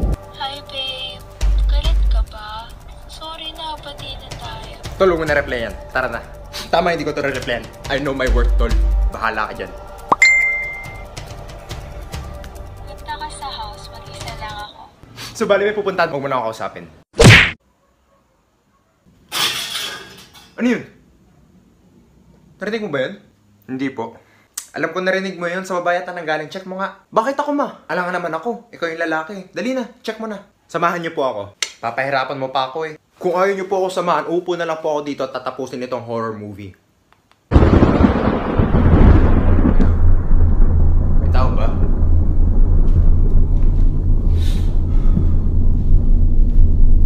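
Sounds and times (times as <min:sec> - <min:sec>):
deep rumbling boom: 0:37.6 - 0:47.0
loud hit with falling low tone: 0:37.6 - 0:47.0.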